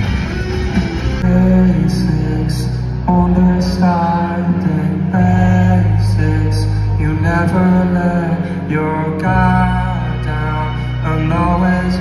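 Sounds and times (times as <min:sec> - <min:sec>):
live rock band playing: 0:00.0 - 0:12.0.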